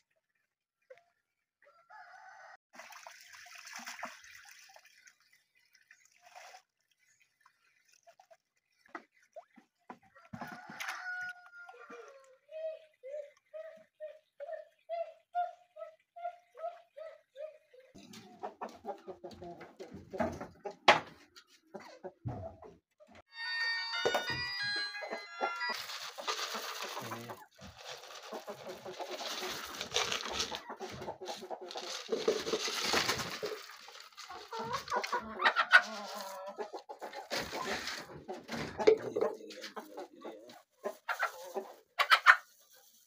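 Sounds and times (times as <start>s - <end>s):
rooster crowing: 1.7s - 2.6s, 10.3s - 11.9s
chickens clucking: 9.0s - 23.2s, 24.2s - 43.0s.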